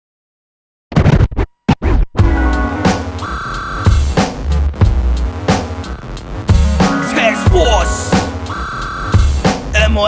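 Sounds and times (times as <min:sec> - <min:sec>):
turntable scratches: 0:00.9 - 0:02.2, 0:02.9 - 0:10.0.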